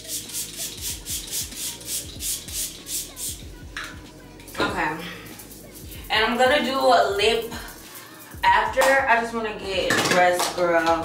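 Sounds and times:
woman talking: 4.6s - 5.2s, 6.1s - 7.8s, 8.4s - 11.0s.

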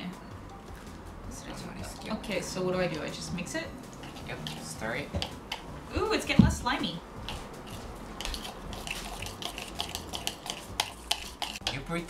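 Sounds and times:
chopsticks tapping a bowl: 4.0s - 5.6s, 8.2s - 11.9s.

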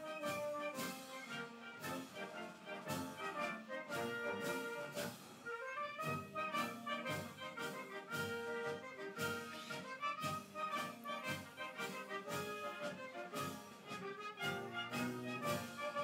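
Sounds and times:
brass band processional music: 0.0s - 16.0s.

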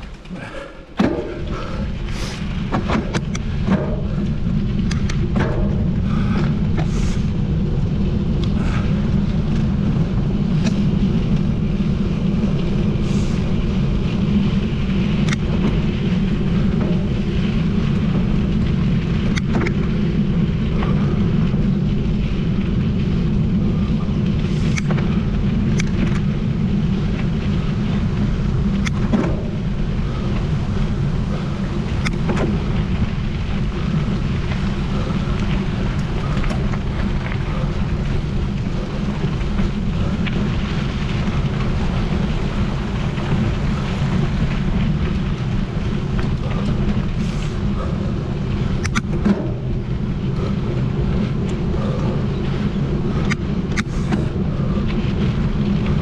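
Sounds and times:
bike clicks and rattles: 0.0s - 56.0s
bike tyres rumbling over gravel: 0.0s - 56.0s
wind buffeting microphone: 0.0s - 56.0s.

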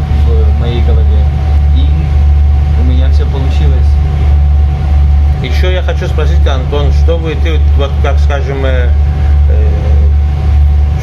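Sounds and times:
constant thin hum: 0.0s - 11.0s
ferry engine drone: 0.0s - 11.0s
man speaking quietly: 5.4s - 10.1s.

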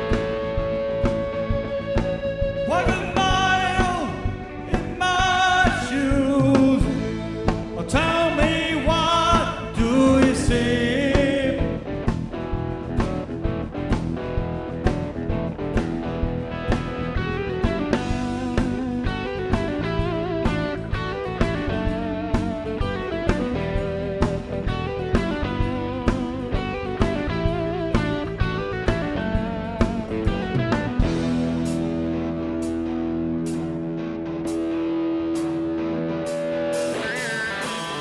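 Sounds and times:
bass guitar: 0.0s - 38.0s
electric guitar: 0.0s - 38.0s.

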